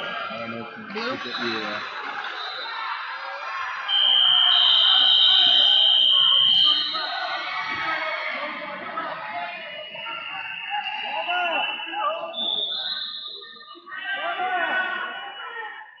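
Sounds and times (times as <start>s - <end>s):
murmur of voices: 0.0s - 16.0s.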